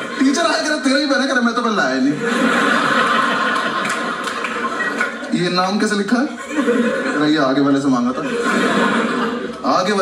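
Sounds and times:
comedian talking: 0.0 - 2.4
audience laughing: 2.0 - 10.0.

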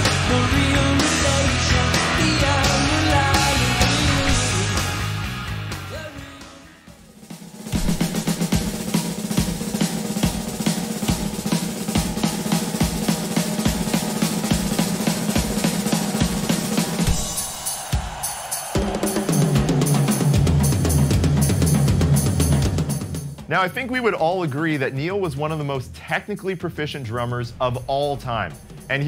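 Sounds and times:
music: 0.0 - 29.0
cymbals: 6.8 - 23.5
snare and tom strokes: 7.2 - 23.6
bass drum hits: 7.8 - 8.8.

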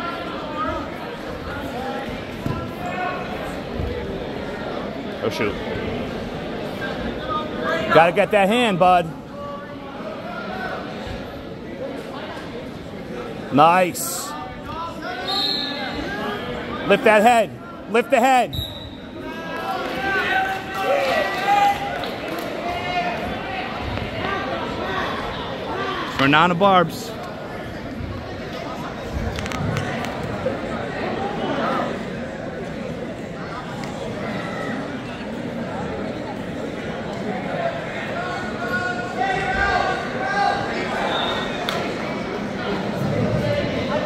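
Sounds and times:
people talking and calling out: 0.0 - 44.0.

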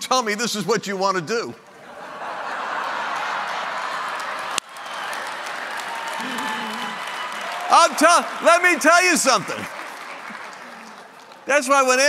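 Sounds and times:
audience applauding: 2.3 - 12.0.

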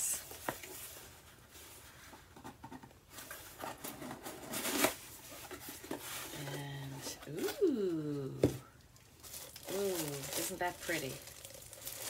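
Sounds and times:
person humming: 6.5 - 8.6.

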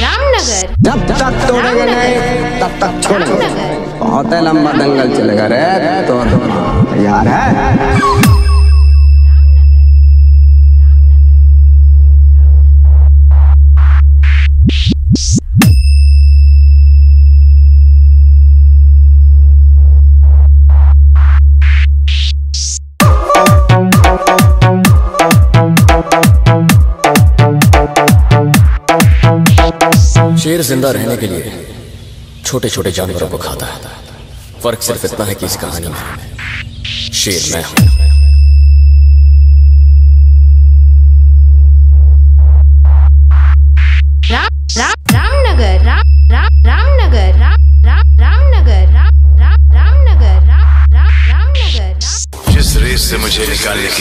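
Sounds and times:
deep electronic bass tone: 4.3 - 30.8, 36.0 - 54.0
noisy drum hits: 52.4 - 54.0.

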